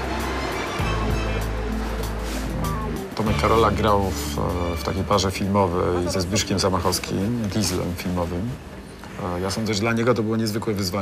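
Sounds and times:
background music with deep bass: 0.0 - 8.7.

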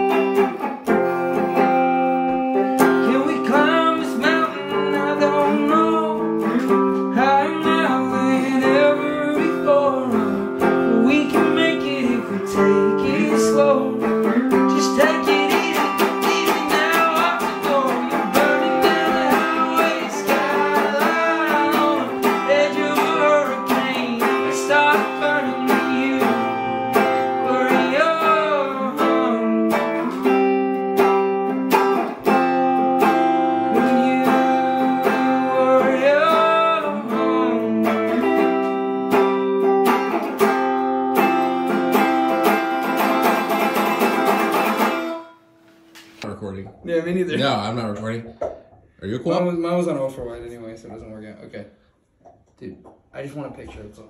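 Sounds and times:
electric guitar notes and chords: 0.0 - 47.7.

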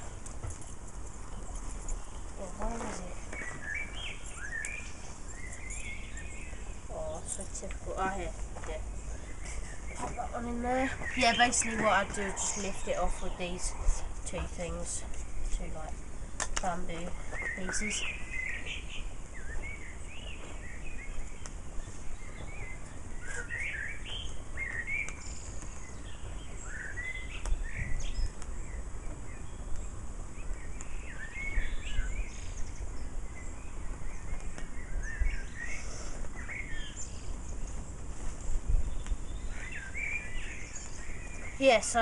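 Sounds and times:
songbirds chirping: 0.0 - 42.0.

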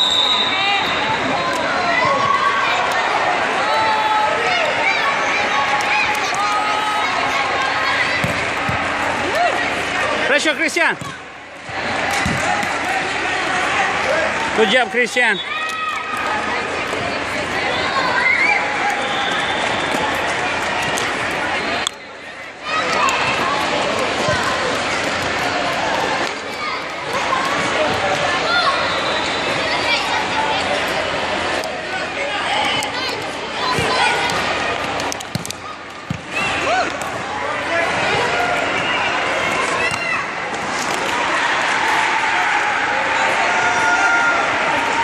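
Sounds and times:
chatter and shouts in a hall: 0.0 - 45.0
crowd talking and calling out: 0.0 - 45.0
ball kicked and bouncing: 12.2 - 12.8, 35.3 - 37.1.

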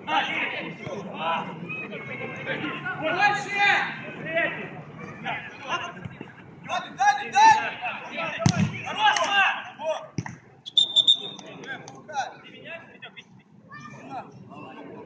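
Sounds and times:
ball being kicked: 8.4 - 8.8
referee's whistle blast: 10.6 - 11.5.

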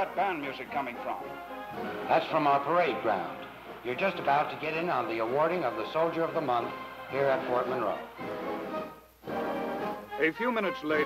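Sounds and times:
marching band playing: 0.8 - 11.0.

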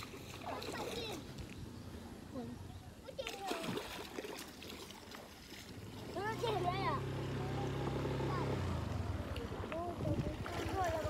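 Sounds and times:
low motor hum: 5.1 - 11.0.

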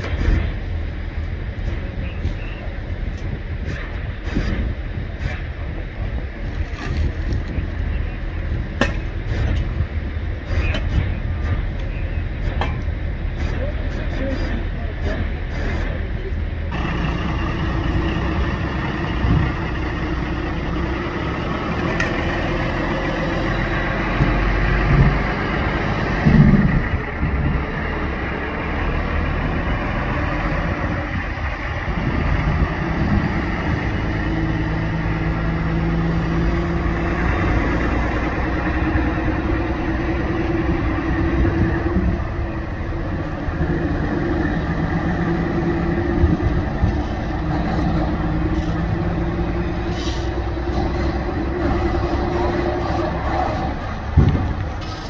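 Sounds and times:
diesel engine running: 0.0 - 55.0
street traffic: 0.0 - 55.0.

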